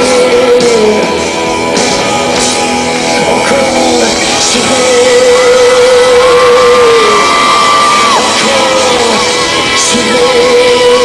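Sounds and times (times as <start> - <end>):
crowd shouting and cheering: 0.0 - 11.0
man singing: 0.0 - 11.0
rock band playing: 0.0 - 11.0.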